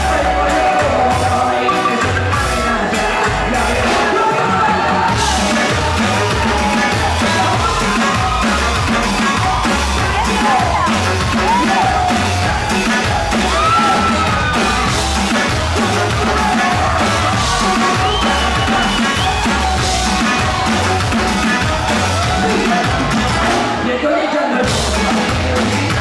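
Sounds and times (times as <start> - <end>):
crowd yelling: 0.0 - 26.0
live rock band playing: 0.0 - 26.0
person singing: 0.0 - 26.0.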